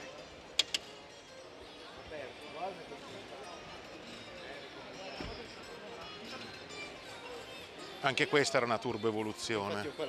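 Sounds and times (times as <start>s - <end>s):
exhibition hall background noise: 0.0s - 10.0s.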